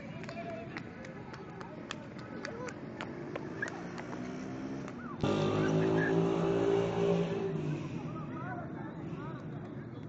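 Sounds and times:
vehicle engine running: 2.8s - 9.7s.

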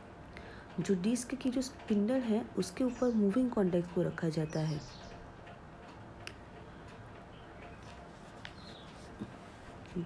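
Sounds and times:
background room noise: 0.0s - 10.0s.

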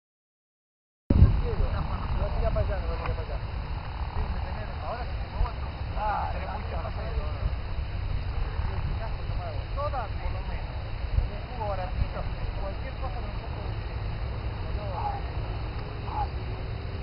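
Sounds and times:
distant voices talking: 1.1s - 17.0s
wind rumbling on microphone: 1.1s - 17.0s.

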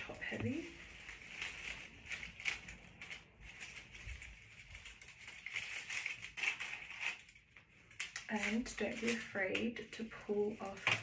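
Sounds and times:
dried flowers rustling and crackling: 0.0s - 11.0s.

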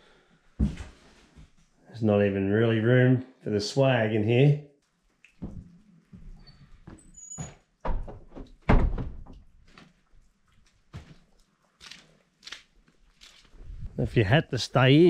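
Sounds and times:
knocks and thuds: 7.8s - 9.4s.

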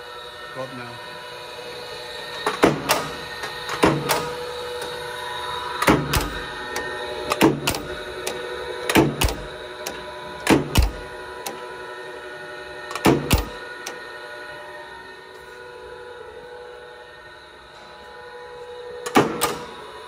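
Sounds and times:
machinery hum: 0.0s - 20.0s.

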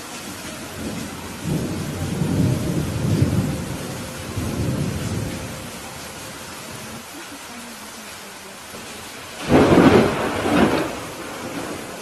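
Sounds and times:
steady rain: 0.0s - 12.0s
thunderclap rumbling: 0.2s - 7.0s, 8.7s - 12.0s.

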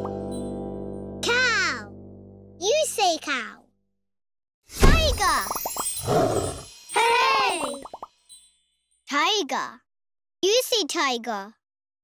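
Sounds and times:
falling cartoon tone: 7.0s - 7.9s.

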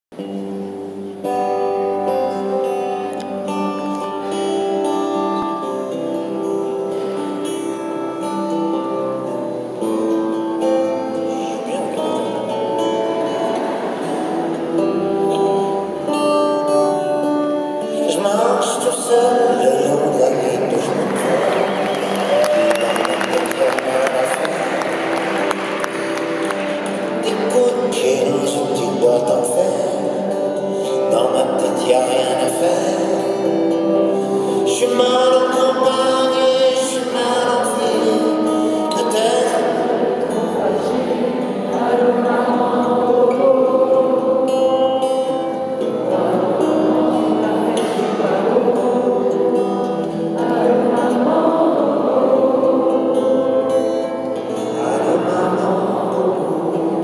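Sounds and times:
acoustic guitar plucked notes: 0.1s - 57.0s
crowd noise: 0.1s - 57.0s
scattered clapping: 20.9s - 28.0s.

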